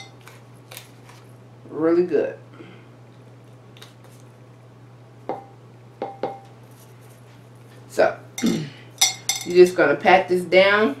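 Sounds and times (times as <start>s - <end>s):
metal spoon clinking on a bowl: 8.4s - 9.6s.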